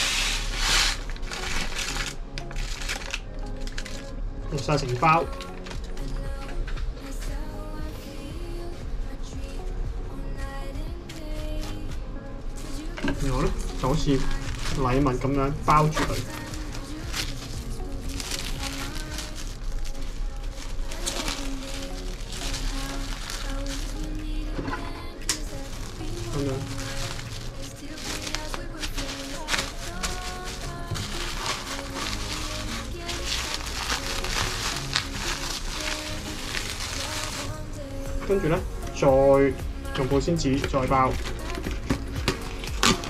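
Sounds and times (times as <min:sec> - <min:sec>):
plastic wrap crinkling: 0:00.0 - 0:06.6, 0:12.6 - 0:24.4, 0:25.2 - 0:37.7, 0:40.6 - 0:43.0
background music: 0:00.0 - 0:43.0.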